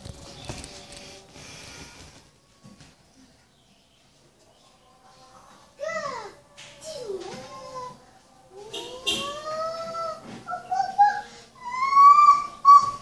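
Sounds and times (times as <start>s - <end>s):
toddler vocalizing: 8.9s - 13.0s.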